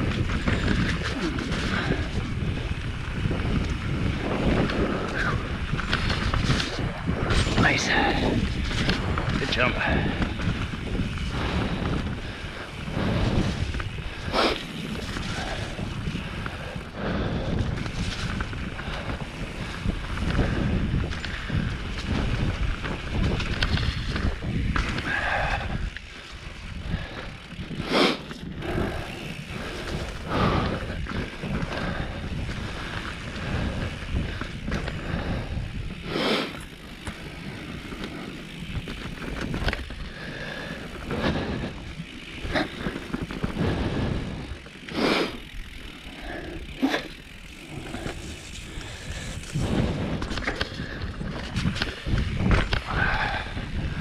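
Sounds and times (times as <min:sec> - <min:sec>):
bike tyres rumbling on dirt: 0:00.0 - 0:54.0
wind on microphone: 0:00.0 - 0:54.0.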